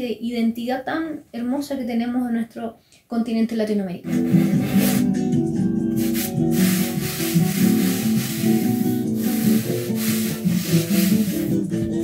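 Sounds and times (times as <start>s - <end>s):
hand plane rubbing wood: 4.1s - 5.1s, 6.1s - 11.6s
background music: 4.1s - 12.0s.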